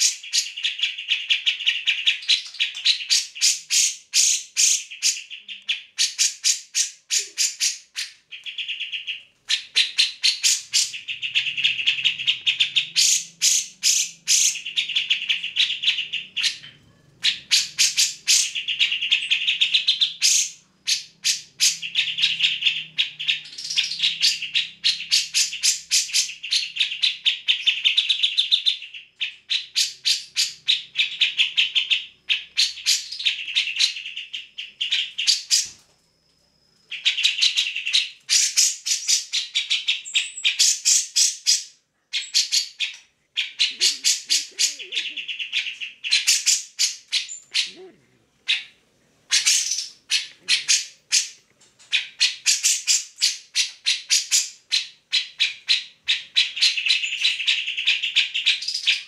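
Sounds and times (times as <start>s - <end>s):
bulbul singing: 0.0s - 35.8s, 36.5s - 59.0s.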